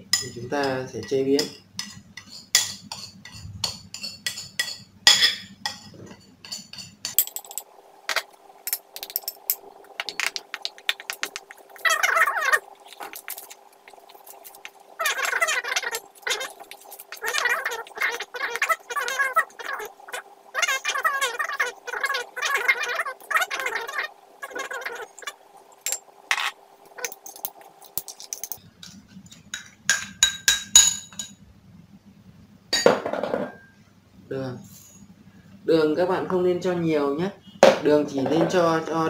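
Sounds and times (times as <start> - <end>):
ceramic bowl clinking on metal bowl: 0.0 - 7.6, 29.3 - 31.4
metal spoon scraping steel bowl: 0.2 - 7.6.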